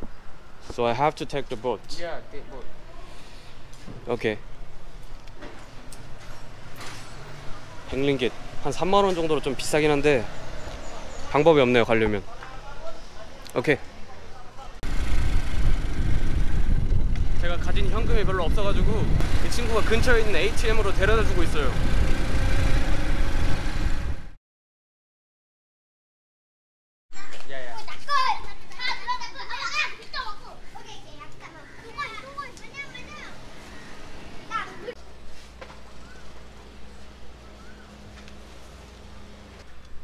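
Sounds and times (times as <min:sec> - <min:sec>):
children chattering and calling out: 0:02.6 - 0:03.7, 0:27.1 - 0:35.1
wind buffeting microphone: 0:14.8 - 0:24.2.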